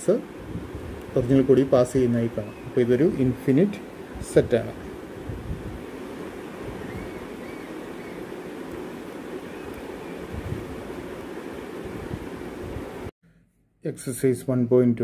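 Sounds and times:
steady rushing hiss: 0:00.0 - 0:13.1.

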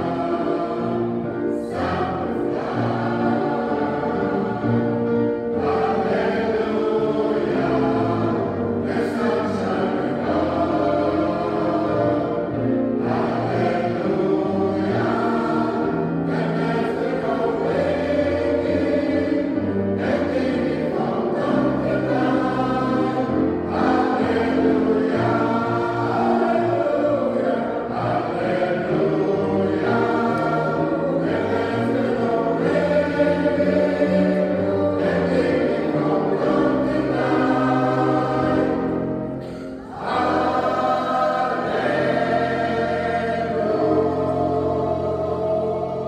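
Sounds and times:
mixed choir singing: 0:00.0 - 0:46.0.

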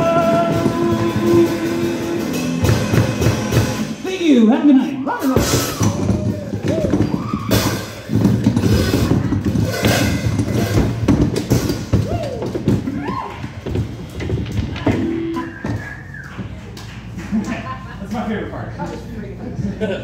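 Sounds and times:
sliding ringing guitar tones: 0:14.9 - 0:15.7.

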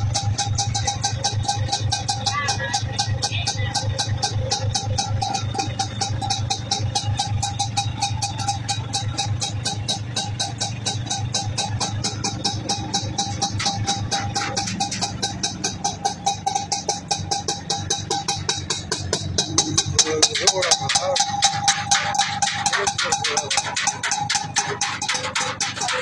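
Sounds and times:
two-stroke engine idling: 0:00.0 - 0:26.0.

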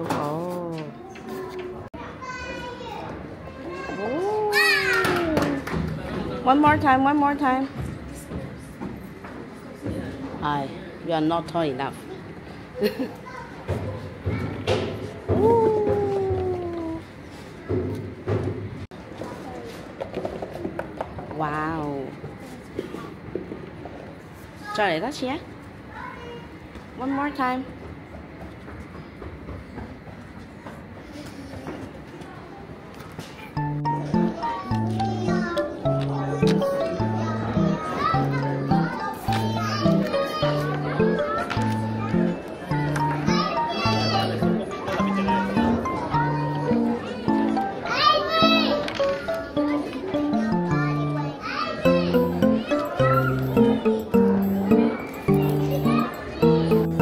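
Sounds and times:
children playing: 0:00.0 - 0:11.0, 0:12.0 - 0:18.0, 0:25.6 - 0:27.0, 0:27.8 - 0:57.0.

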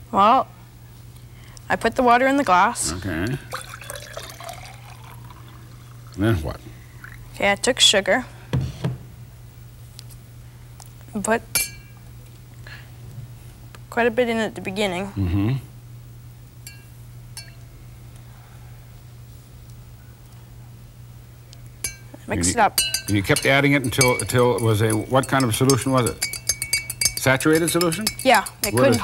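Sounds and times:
water pouring into a glass: 0:03.4 - 0:07.2
spoon tapping drinking glass: 0:16.7 - 0:17.6, 0:21.8 - 0:29.0.

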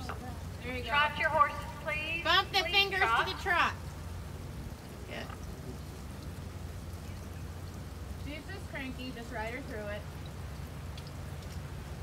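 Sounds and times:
steady rain falling: 0:00.0 - 0:12.0.

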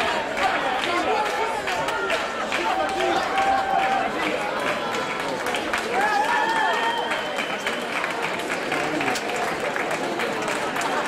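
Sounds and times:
rhythmic clapping: 0:00.0 - 0:11.0.

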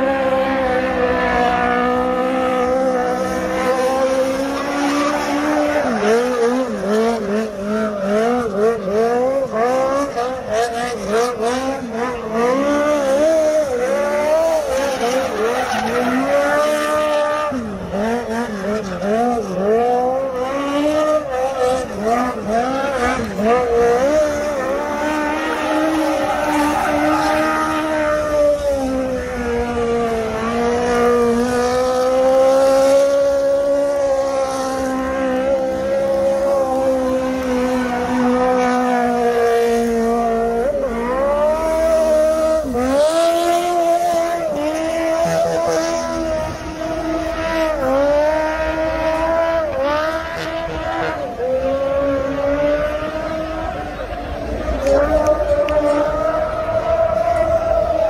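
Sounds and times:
race car engine revving: 0:00.0 - 0:58.0.

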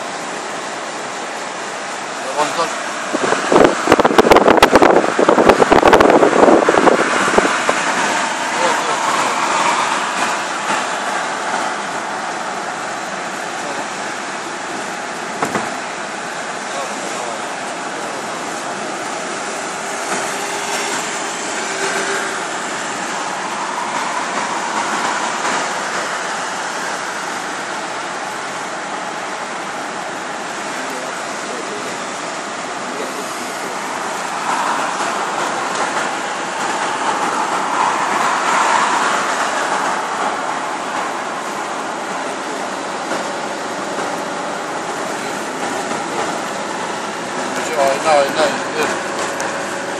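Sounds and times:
car road and wind noise: 0:00.0 - 0:49.9.

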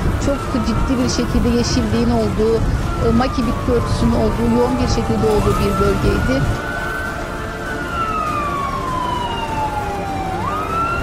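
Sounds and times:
emergency vehicle siren wailing: 0:00.0 - 0:11.0.

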